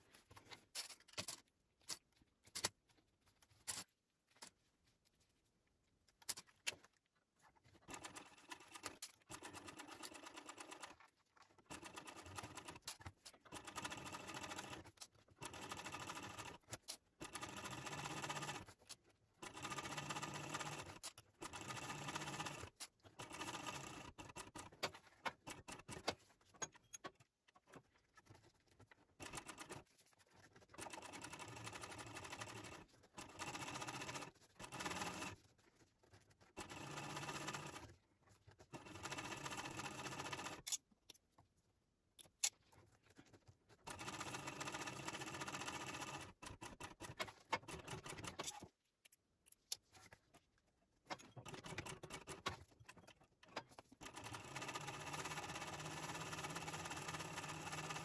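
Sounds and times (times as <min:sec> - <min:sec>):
sewing machine stitching: 0:07.8 - 0:11.0, 0:11.6 - 0:26.3, 0:29.2 - 0:29.9, 0:30.6 - 0:35.4, 0:36.5 - 0:38.0, 0:38.6 - 0:40.7, 0:43.8 - 0:48.7, 0:51.1 - 0:58.0.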